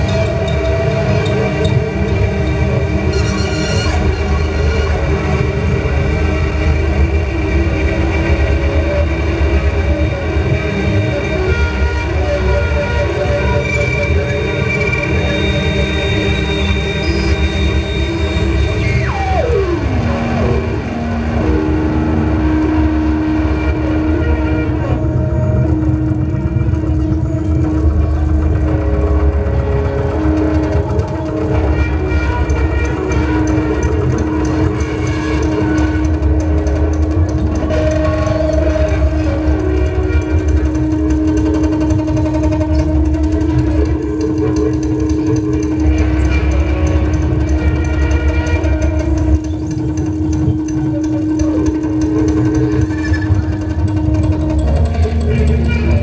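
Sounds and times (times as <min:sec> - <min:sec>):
held electronic drone: 0:00.0 - 0:56.0.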